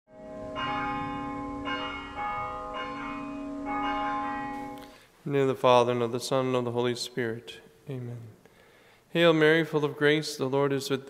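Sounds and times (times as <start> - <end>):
bells ringing: 0.1 - 5.0.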